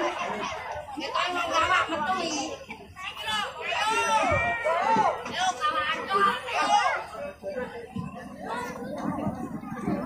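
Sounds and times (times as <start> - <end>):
children shouting: 0.0 - 7.2.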